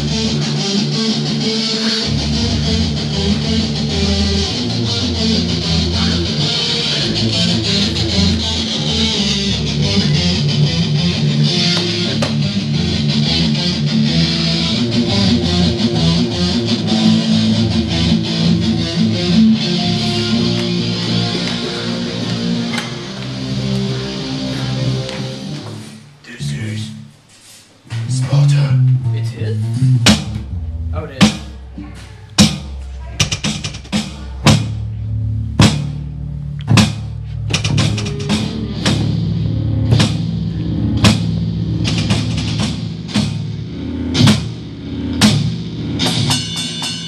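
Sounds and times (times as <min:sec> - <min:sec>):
bass guitar: 0:00.0 - 0:27.2, 0:27.8 - 0:47.0
distorted electric guitars: 0:00.0 - 0:27.3, 0:27.9 - 0:47.0
drum hits: 0:29.9 - 0:43.6, 0:44.2 - 0:44.6.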